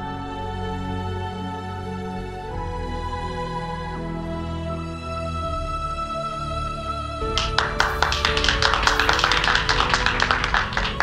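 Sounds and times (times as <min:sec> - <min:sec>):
people clapping: 0:07.3 - 0:11.0.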